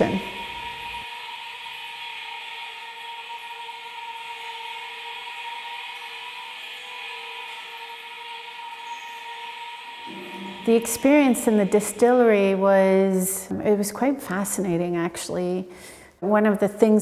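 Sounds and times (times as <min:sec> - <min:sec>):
steady held tones: 0:00.0 - 0:15.5.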